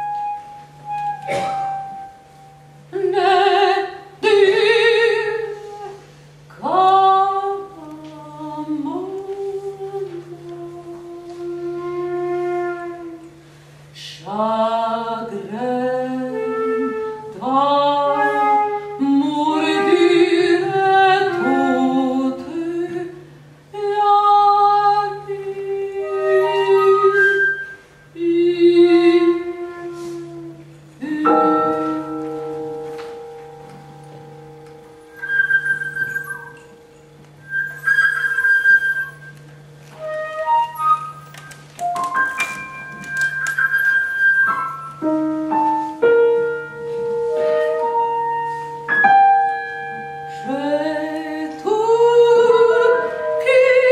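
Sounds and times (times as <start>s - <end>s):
breathy flute notes: 0.0s - 2.9s, 28.9s - 53.9s
flute holding low note: 0.0s - 2.9s, 10.0s - 13.4s, 29.0s - 41.4s
faint steady hum: 0.0s - 53.9s.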